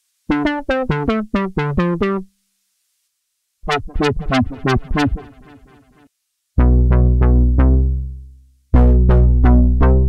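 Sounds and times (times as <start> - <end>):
synthesizer plucky notes: 3.7 - 5.8, 6.6 - 8.2, 8.8 - 10.0.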